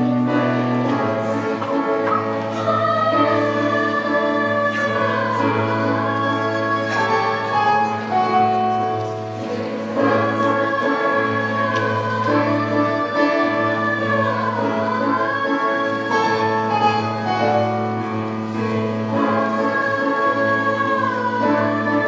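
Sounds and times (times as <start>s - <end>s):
choir singing: 0.0s - 22.0s
instrumental accompaniment: 0.0s - 22.0s.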